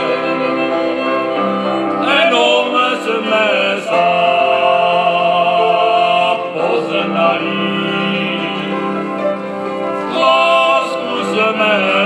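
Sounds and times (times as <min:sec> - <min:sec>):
cimbalom band with fiddles: 0:00.0 - 0:12.0
two men singing a folk duet: 0:02.0 - 0:09.1, 0:10.0 - 0:12.0.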